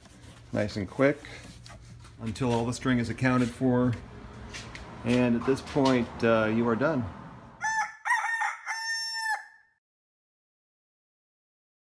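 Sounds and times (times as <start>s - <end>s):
rooster crowing: 7.6s - 9.8s.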